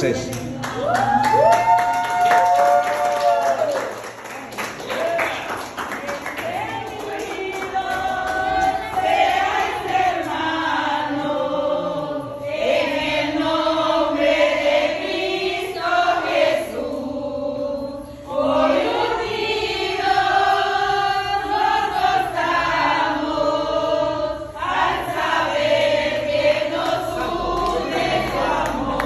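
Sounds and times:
women singing together unaccompanied: 5.9s - 29.0s.

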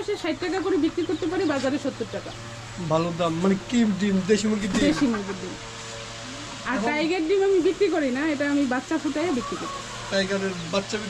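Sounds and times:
chicken crooning: 9.2s - 10.8s.

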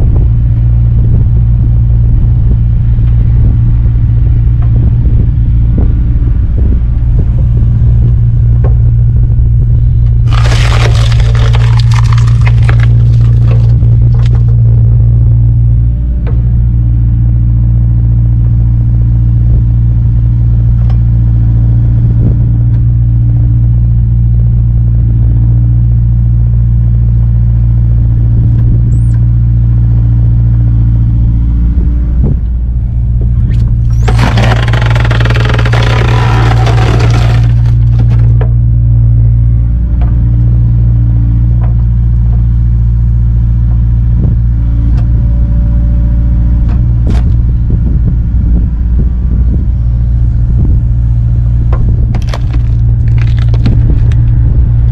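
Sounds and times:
excavator diesel engine running: 0.0s - 54.9s.

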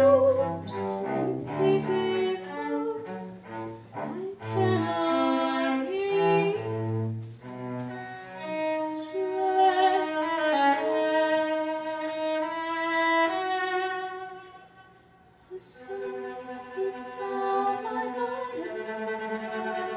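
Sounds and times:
bowed cello: 0.0s - 19.9s.

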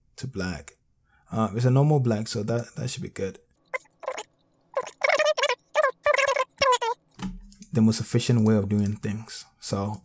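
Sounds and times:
squeaky voice-like bursts: 3.8s - 7.0s.

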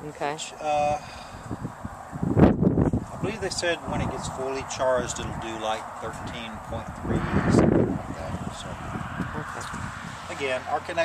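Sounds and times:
wind buffeting microphone: 0.7s - 11.0s.

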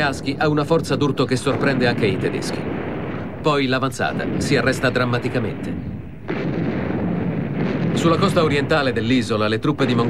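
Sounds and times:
gunfire and shell explosions: 0.0s - 10.0s.

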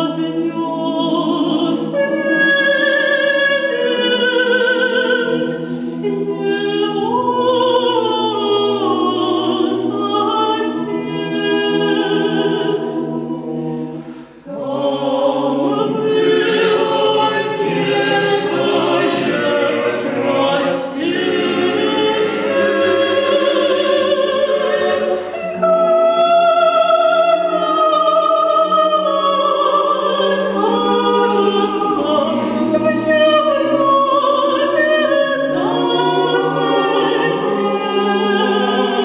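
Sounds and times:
mixed choir singing: 0.0s - 39.0s.

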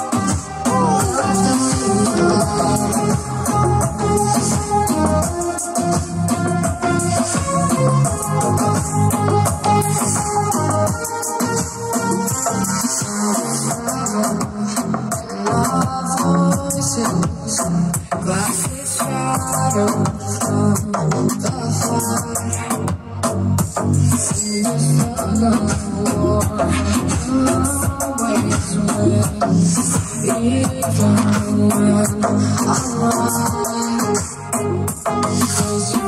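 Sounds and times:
dance music with steady beat: 0.0s - 36.0s.

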